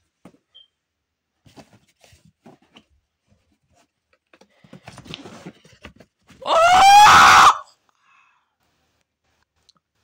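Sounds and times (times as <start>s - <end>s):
high-pitched scream: 6.4s - 7.7s.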